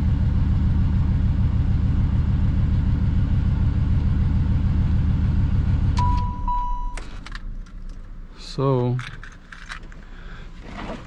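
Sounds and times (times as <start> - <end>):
car engine idling: 0.0 - 10.7.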